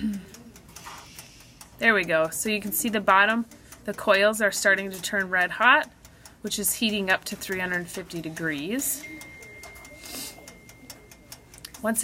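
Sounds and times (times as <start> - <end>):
wind-up timer ticking: 0.0 - 12.0.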